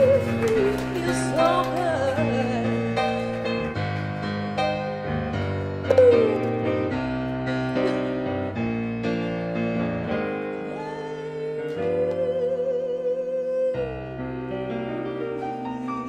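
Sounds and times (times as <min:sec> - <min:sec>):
woman singing: 0:00.0 - 0:03.6, 0:05.8 - 0:06.8, 0:10.6 - 0:16.0
grand piano chords: 0:00.0 - 0:16.0.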